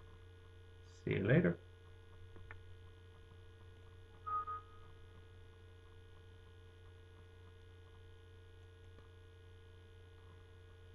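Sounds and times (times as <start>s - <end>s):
low electrical hum: 0.0s - 10.9s
brief high-pitched tone: 4.3s - 4.9s.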